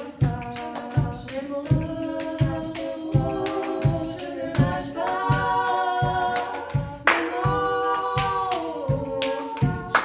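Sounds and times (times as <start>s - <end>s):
body percussion slaps and claps: 0.0s - 10.0s
women singing a cappella harmony: 0.0s - 10.0s.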